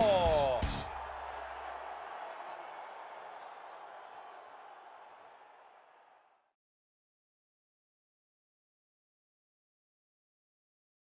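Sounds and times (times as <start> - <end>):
crowd cheering and applauding: 0.0 - 6.5.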